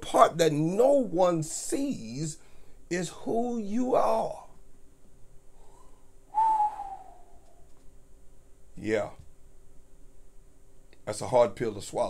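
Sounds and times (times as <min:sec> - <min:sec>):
man whistling descending note: 0:05.7 - 0:07.7.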